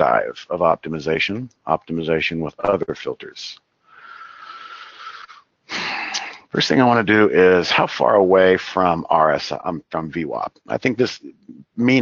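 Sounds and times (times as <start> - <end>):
man breathing into microphone: 3.8 - 6.5.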